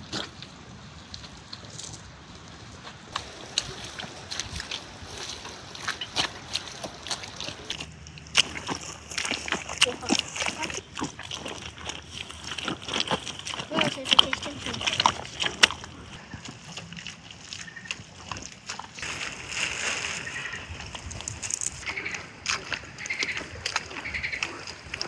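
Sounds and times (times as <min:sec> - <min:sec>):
feet squelching in wet mud: 0:00.0 - 0:25.0.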